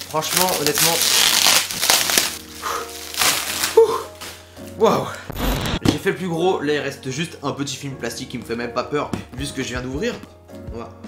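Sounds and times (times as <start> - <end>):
plastic wrapping crinkling and tearing: 0.0 - 5.0
background music: 0.0 - 11.0.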